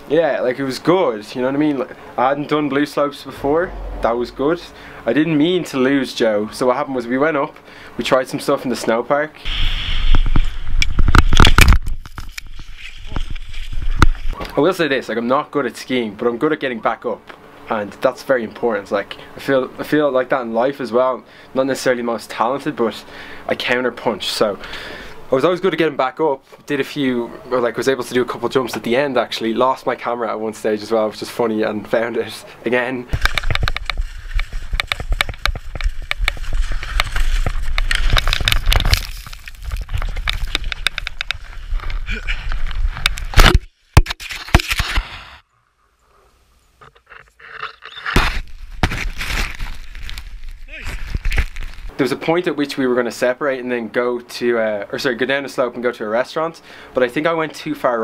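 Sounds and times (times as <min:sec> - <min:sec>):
low wind rumble: 0:02.3 - 0:06.0
skis scraping over packed snow: 0:33.7 - 0:38.4.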